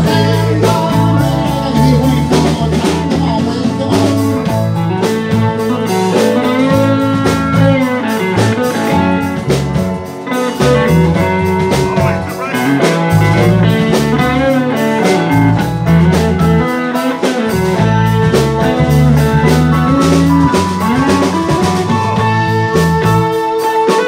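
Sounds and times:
band playing live: 0:00.0 - 0:24.0
electric guitar bending notes: 0:00.0 - 0:24.0
steady drum beat: 0:00.0 - 0:24.0.

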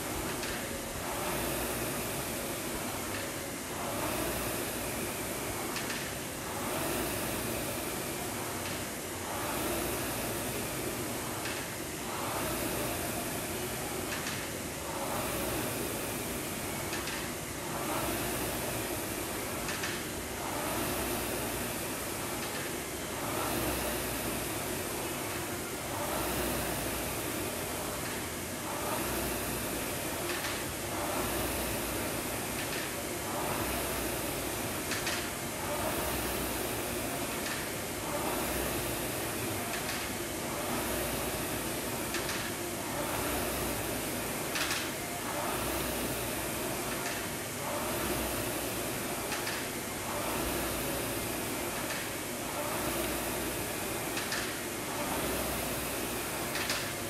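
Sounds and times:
rowing machine fan whooshing: 0:00.0 - 0:57.0.

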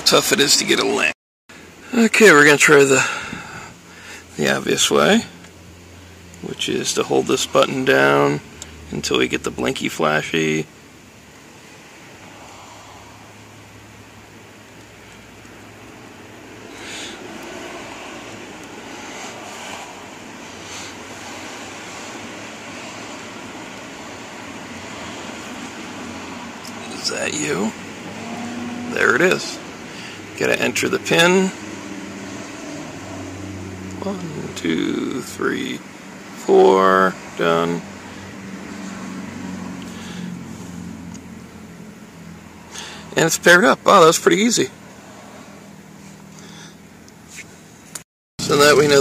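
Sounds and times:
car interior hiss and hum: 0:00.0 - 0:49.0.

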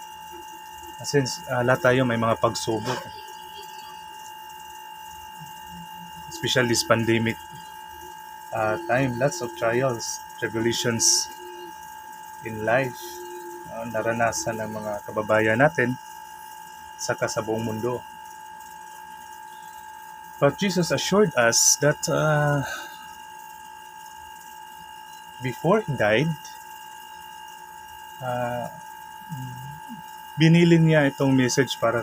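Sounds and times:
faint high-pitched hum: 0:00.0 - 0:32.0
steady high-pitched whine: 0:00.0 - 0:32.0.

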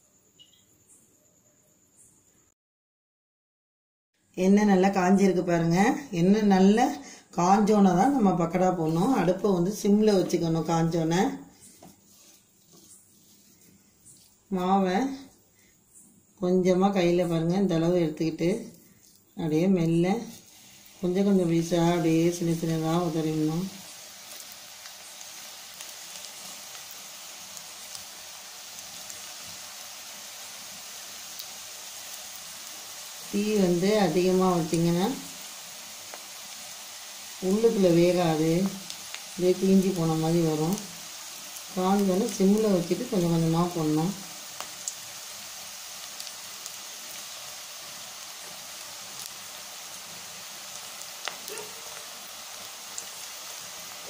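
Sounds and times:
food deep-frying in oil: 0:04.4 - 0:15.3, 0:16.5 - 0:54.0
faint oil crackles: 0:08.0 - 0:15.7, 0:17.8 - 0:54.0.

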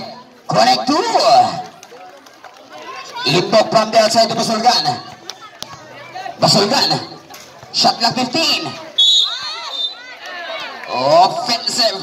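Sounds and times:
voices shouting: 0:08.4 - 0:11.0
referee's whistle: 0:09.0 - 0:10.1.

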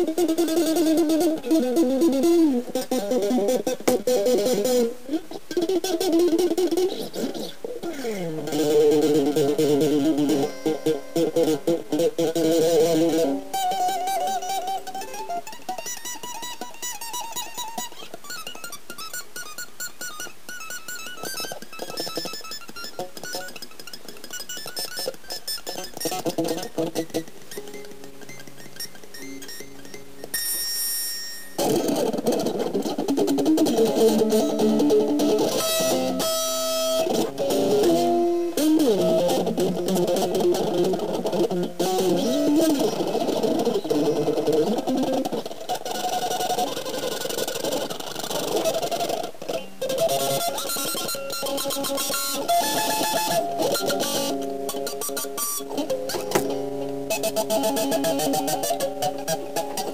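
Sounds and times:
fast electric guitar solo: 0:00.0 - 0:59.9.

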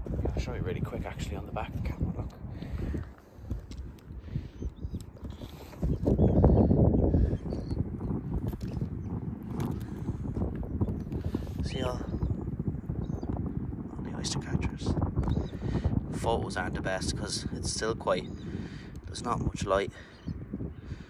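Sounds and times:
wind buffeting microphone: 0:00.0 - 0:21.0
faint bird calls: 0:04.2 - 0:07.9.

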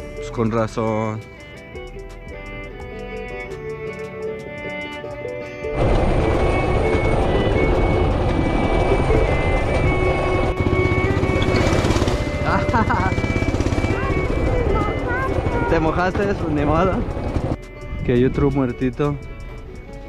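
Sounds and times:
fiddle music: 0:00.0 - 0:20.0
motorcycle engine running: 0:05.7 - 0:19.8.

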